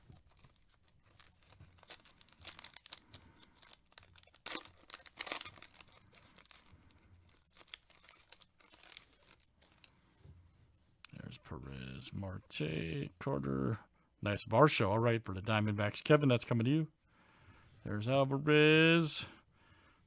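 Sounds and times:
wrapper tearing and crinkling: 0:00.0 - 0:10.0.

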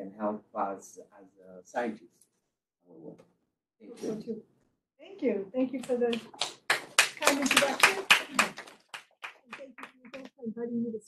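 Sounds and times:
small audience clapping: 0:05.8 - 0:10.4.

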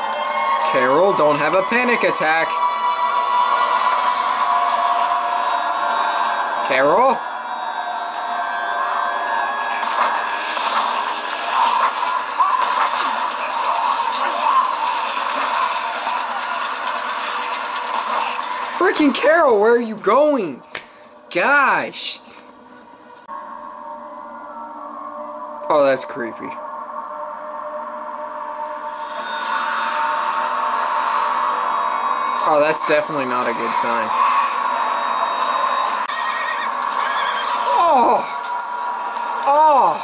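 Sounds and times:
faint music: 0:00.0 - 0:40.0.

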